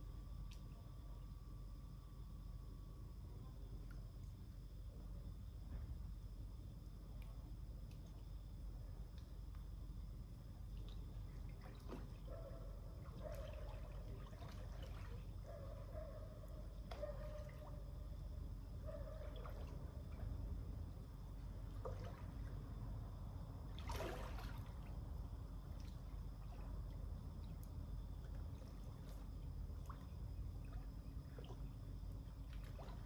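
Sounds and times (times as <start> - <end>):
pool water lapping and dripping: 0.0 - 1.5, 3.1 - 33.0
steady low hum: 0.0 - 33.0
water splashes: 10.6 - 15.6, 19.1 - 20.6, 21.4 - 23.0, 23.6 - 33.0.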